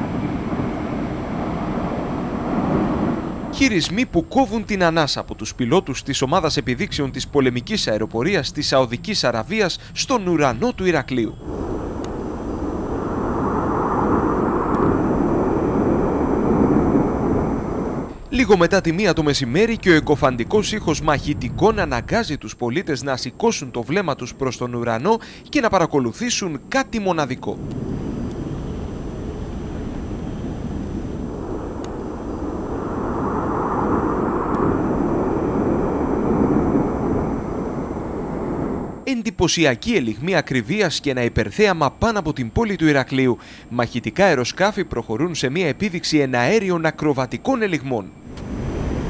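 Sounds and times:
jets flying overhead: 0:00.0 - 0:24.6, 0:25.2 - 0:39.1, 0:48.1 - 0:49.0.

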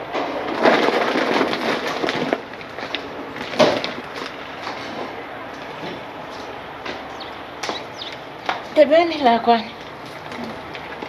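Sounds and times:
sheet-metal door rattling and scraping: 0:00.1 - 0:05.1.

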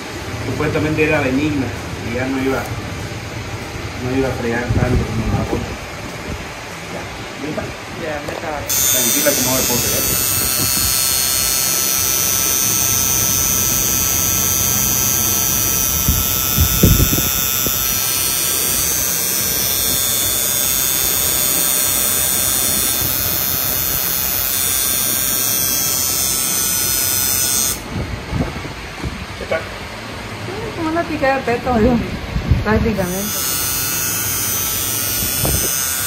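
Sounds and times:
tattoo machine buzzing: 0:08.7 - 0:28.0, 0:33.0 - 0:36.0.

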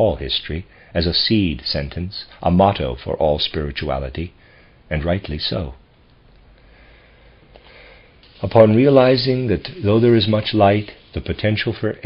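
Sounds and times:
man breathing in through nose: 0:04.4 - 0:04.8, 0:06.6 - 0:08.2.

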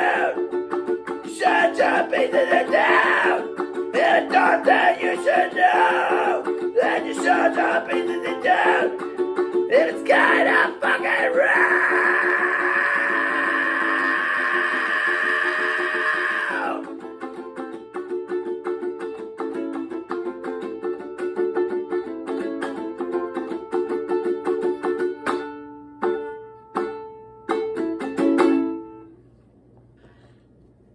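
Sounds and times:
ukulele strummed fast: 0:00.0 - 0:29.0.

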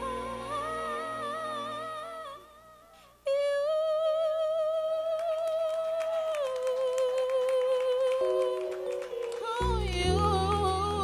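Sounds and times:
woman singing a ballad: 0:00.0 - 0:11.0.

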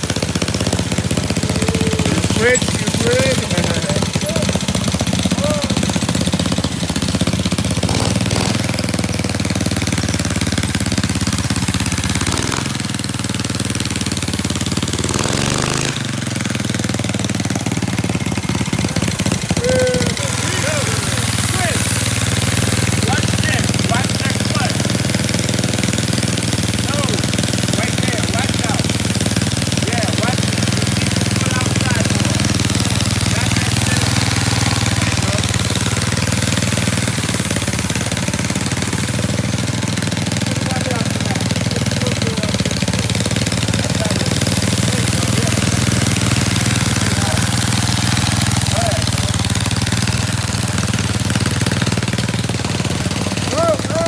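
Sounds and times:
small gasoline engines running: 0:00.0 - 0:54.0.

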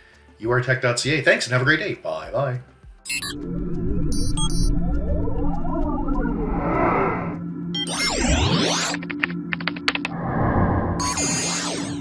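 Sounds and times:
low music drone: 0:03.4 - 0:12.0
keyboard typing clicks: 0:08.9 - 0:10.1.

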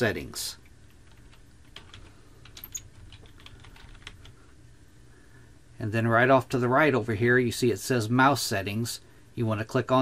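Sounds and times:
low steady hum: 0:00.0 - 0:10.0
keyboard keys clicking: 0:01.0 - 0:04.3.

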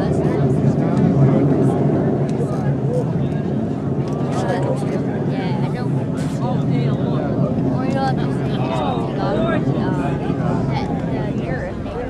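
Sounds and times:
distant rocket engines rumbling: 0:00.0 - 0:12.0
spectators' voices: 0:00.0 - 0:12.0.

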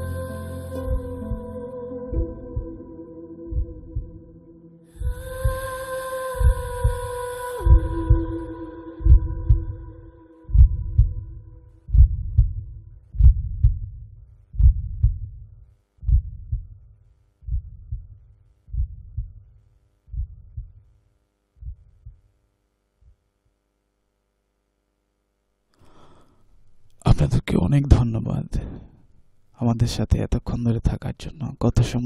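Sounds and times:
held musical tone dropping in pitch: 0:00.0 - 0:10.0
heartbeat thumps: 0:00.9 - 0:05.8, 0:06.4 - 0:20.9, 0:21.6 - 0:22.4.

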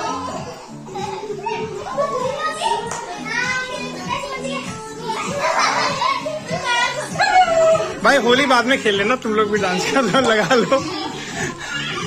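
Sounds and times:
background music: 0:00.0 - 0:12.0
children chattering and calling: 0:00.0 - 0:12.0.

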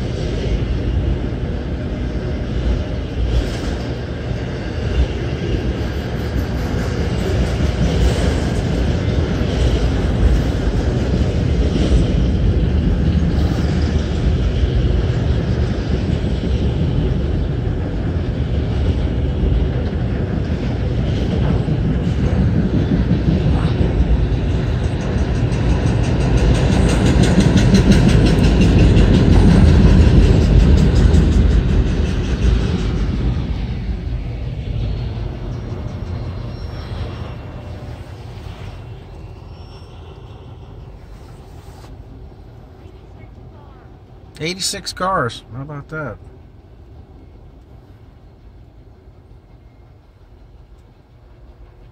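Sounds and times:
train wheels rumbling on rails: 0:00.0 - 0:51.9.

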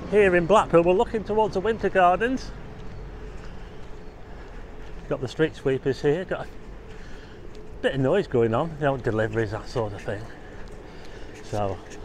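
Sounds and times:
faint steady hum: 0:00.0 - 0:12.0
street sweeper engine rumble: 0:00.0 - 0:12.0.

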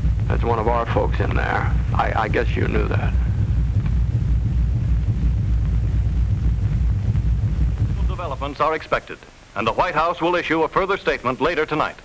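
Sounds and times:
low rumble of fire: 0:00.0 - 0:11.6.

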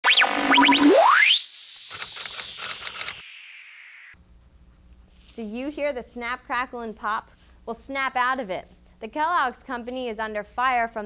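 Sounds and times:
electronic glides and rising sweep: 0:00.0 - 0:04.2
sharp typewriter-like clicks: 0:01.9 - 0:03.2.

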